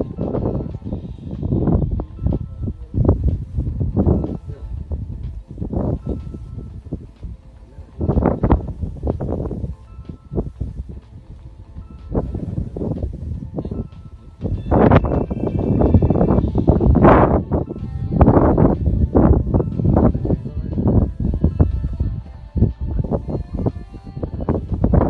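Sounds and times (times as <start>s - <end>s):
background music with held notes: 0.0s - 25.0s.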